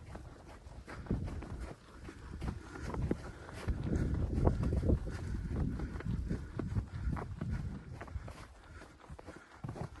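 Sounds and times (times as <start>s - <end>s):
footsteps in snow: 0.0s - 10.0s
wind rumble on microphone: 0.0s - 10.0s.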